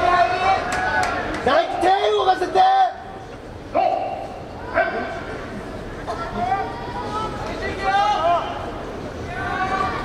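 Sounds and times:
arena background murmur: 0.0s - 10.0s
men shouting high calls: 3.7s - 5.3s.

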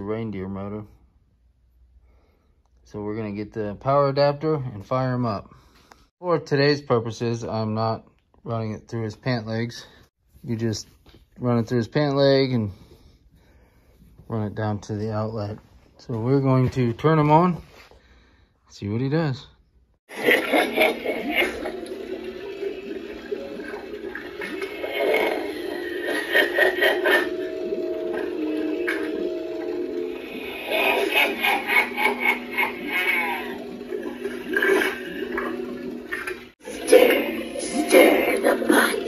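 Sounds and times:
gurgling water-like sound effects: 20.1s - 39.0s
droning music: 21.0s - 36.5s
voice speaking through speaker: 30.4s - 33.6s, 36.6s - 39.0s.

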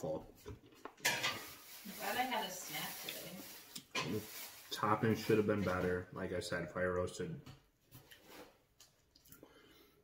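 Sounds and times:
tableware clattering: 1.0s - 1.6s.

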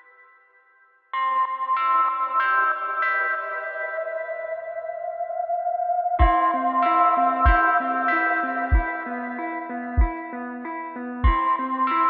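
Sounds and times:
picked guitar notes with echo: 1.2s - 12.0s.

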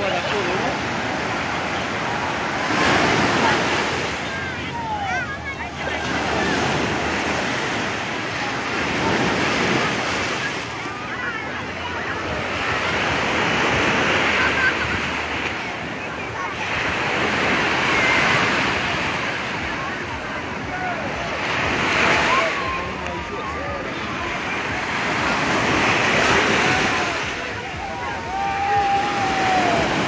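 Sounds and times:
crowd chatter: 0.0s - 30.0s
sea waves breaking on sand: 0.0s - 30.0s.

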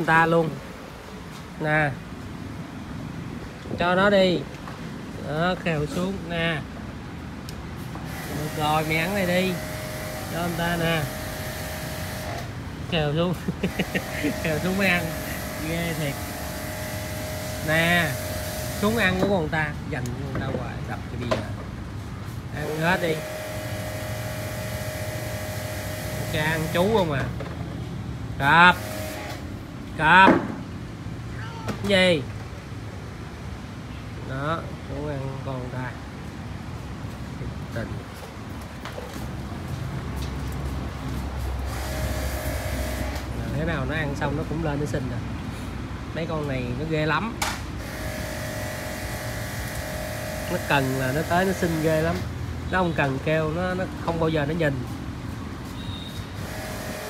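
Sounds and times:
mechanical hum: 7.1s - 19.6s, 22.0s - 31.9s, 38.2s - 44.9s, 47.5s - 54.5s, 55.2s - 57.0s
two-tone machine whine: 8.2s - 12.5s, 22.6s - 27.1s, 41.7s - 43.4s, 47.8s - 52.3s, 56.4s - 57.0s.

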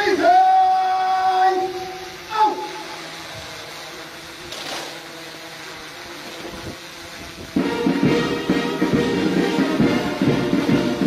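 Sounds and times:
brass band playing: 7.6s - 11.0s.

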